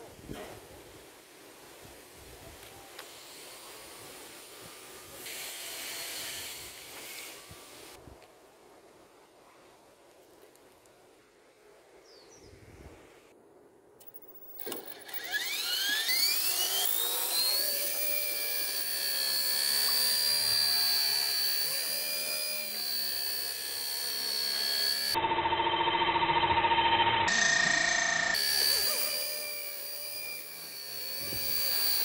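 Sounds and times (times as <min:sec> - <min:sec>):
rc helicopter rotor whine: 0:14.0 - 0:32.0.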